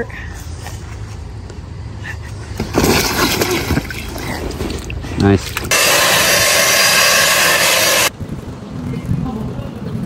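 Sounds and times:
water splashing in a pool: 2.7s - 6.3s.

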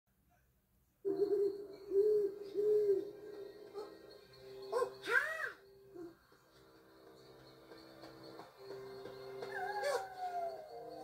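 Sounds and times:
eerie background music: 1.0s - 11.0s
owl hooting: 1.1s - 4.1s, 9.5s - 11.0s.

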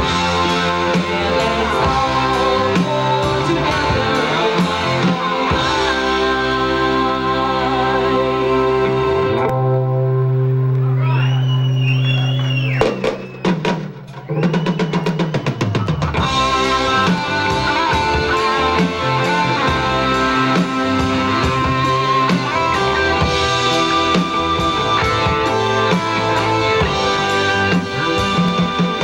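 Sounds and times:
live rock band playing: 0.0s - 29.0s.

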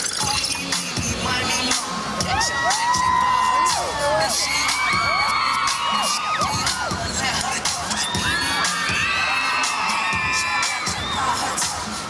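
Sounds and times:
children cheering and screaming: 2.2s - 12.0s.

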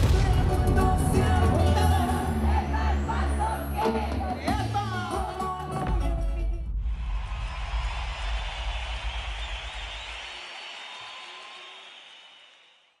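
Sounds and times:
low rumble: 0.0s - 3.8s, 6.4s - 9.4s
concert crowd cheering and shouting: 0.1s - 5.8s, 7.0s - 12.4s.

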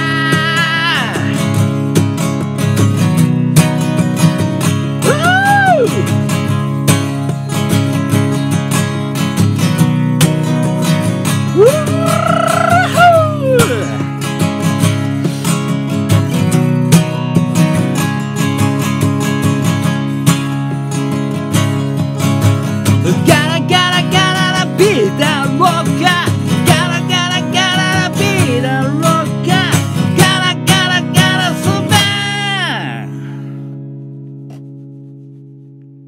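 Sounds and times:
acoustic guitar strummed hard: 0.0s - 35.8s.

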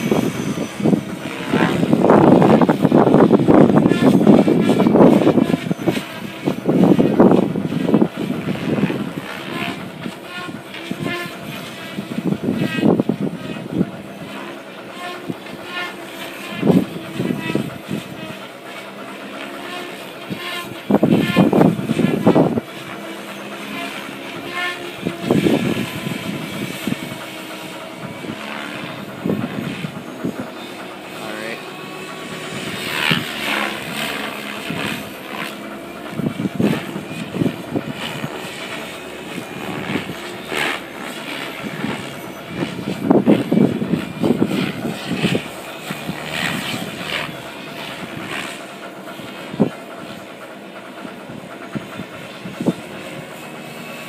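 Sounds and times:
rc helicopter motor and rotor whine: 0.0s - 54.0s.

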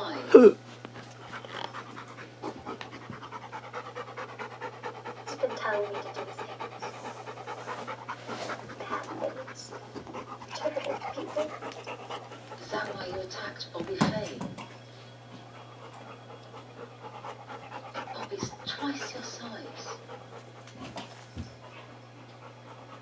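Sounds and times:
dog panting: 1.0s - 13.7s, 15.0s - 23.0s.

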